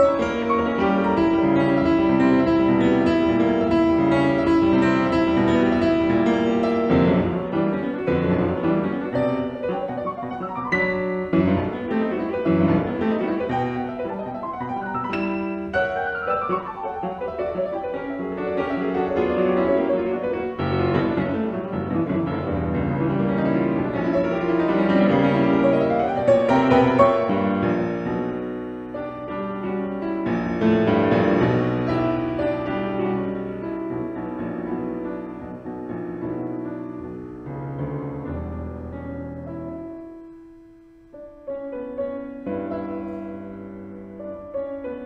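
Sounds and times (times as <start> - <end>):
classical piano music: 0.0 - 45.0.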